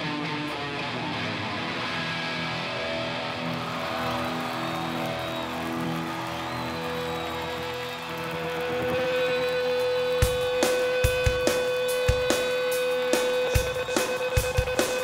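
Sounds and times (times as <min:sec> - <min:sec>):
electric guitar playing: 0:00.0 - 0:15.0.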